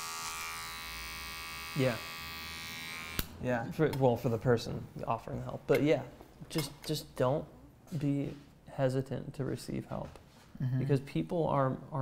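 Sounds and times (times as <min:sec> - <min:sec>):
electric hair clippers buzzing: 0:00.0 - 0:03.3.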